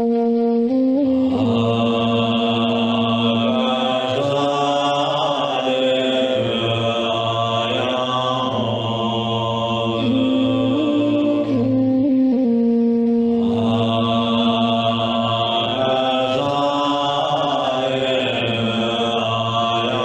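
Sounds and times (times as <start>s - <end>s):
deep drone: 0.0s - 20.0s
man chanting: 1.2s - 11.8s, 13.4s - 20.0s.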